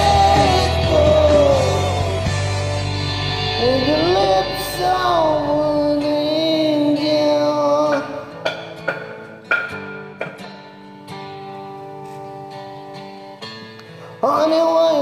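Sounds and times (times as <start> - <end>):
man singing karaoke: 0.0 - 2.8, 3.4 - 8.6, 14.2 - 15.0
acoustic guitar plucked chords: 0.0 - 15.0
rock ballad backing track: 0.0 - 15.0.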